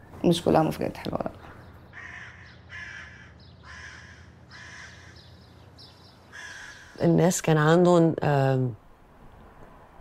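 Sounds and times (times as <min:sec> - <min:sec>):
short harsh bird calls: 0:01.9 - 0:07.0.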